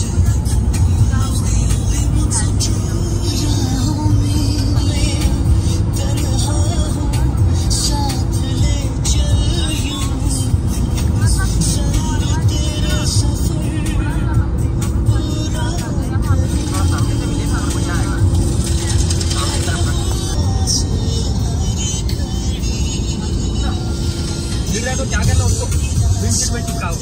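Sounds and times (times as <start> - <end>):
car road and engine rumble: 0.0 - 27.0
music playing: 0.0 - 27.0.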